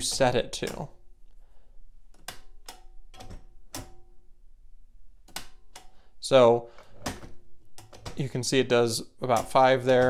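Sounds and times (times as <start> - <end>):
manual typewriter clacking: 9.3 - 10.0.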